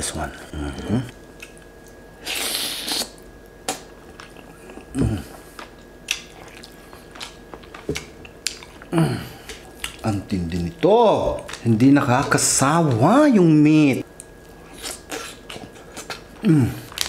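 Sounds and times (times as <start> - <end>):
man humming: 0.4 - 1.1, 4.8 - 5.4, 8.9 - 9.4, 16.4 - 16.9
chewing with wet clicks: 1.2 - 2.0, 3.0 - 12.4, 14.0 - 17.0
crackling meat being torn and bitten: 5.6 - 12.4.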